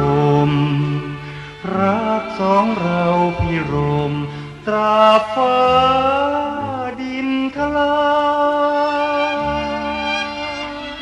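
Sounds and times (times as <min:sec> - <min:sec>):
man singing a ballad: 0:00.0 - 0:11.0.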